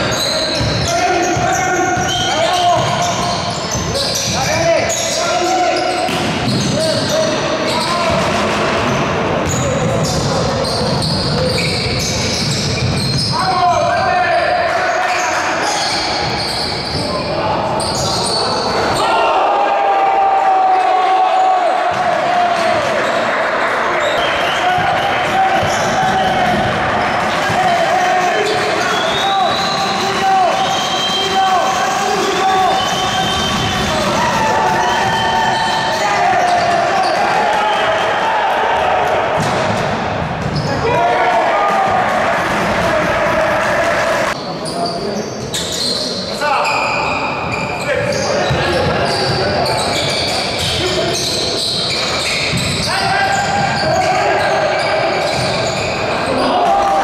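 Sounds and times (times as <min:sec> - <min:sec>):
sneakers squeaking: 0:00.0 - 0:14.0, 0:14.8 - 0:19.1, 0:24.0 - 0:31.3, 0:39.3 - 0:41.0, 0:44.3 - 0:56.9
players calling out: 0:00.0 - 0:57.0.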